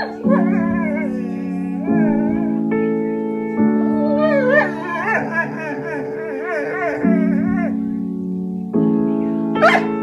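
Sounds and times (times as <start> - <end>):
dog howling: 0.0 - 3.0, 4.0 - 7.9, 9.6 - 9.9
sustained keyboard chords: 0.0 - 10.0.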